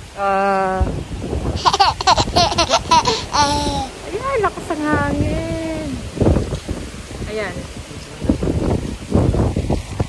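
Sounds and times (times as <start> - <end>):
wind buffeting microphone: 0.0 - 10.0
woman laughing: 1.6 - 3.9.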